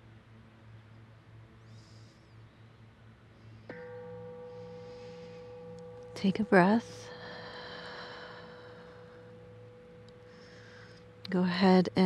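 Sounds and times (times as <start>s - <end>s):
bell-like ringing tone: 3.7s - 12.0s.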